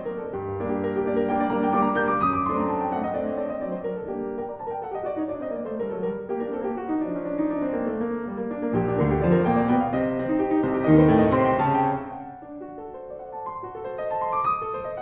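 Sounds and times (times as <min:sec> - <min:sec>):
grand piano playing: 0:00.0 - 0:15.0.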